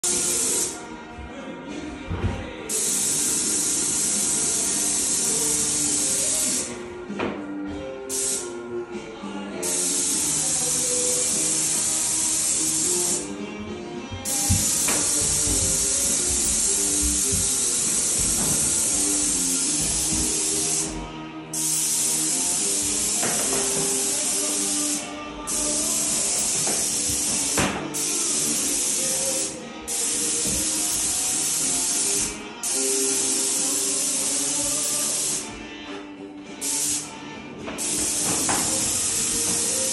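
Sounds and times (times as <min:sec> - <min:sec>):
paint sprayer hissing: 0:00.0 - 0:00.8, 0:02.7 - 0:06.8, 0:08.1 - 0:08.6, 0:09.6 - 0:13.4, 0:14.2 - 0:35.6, 0:36.6 - 0:39.9
background music: 0:00.0 - 0:39.9.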